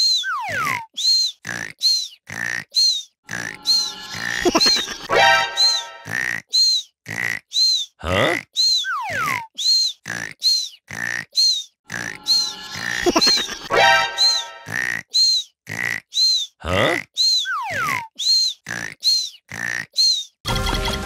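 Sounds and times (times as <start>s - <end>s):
playful cartoon music: 3.3s - 6.4s, 11.9s - 15.0s, 20.5s - 21.0s.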